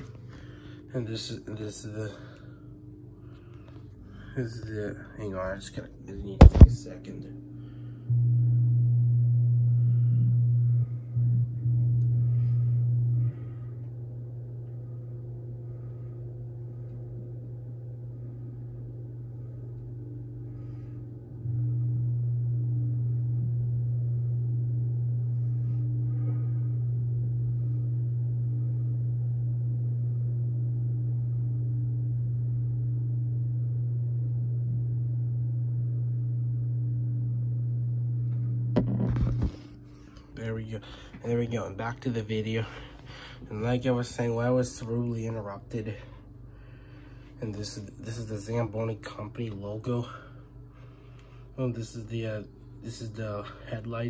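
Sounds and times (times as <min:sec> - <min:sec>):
loud steady low hum: 0:00.0 - 0:54.0.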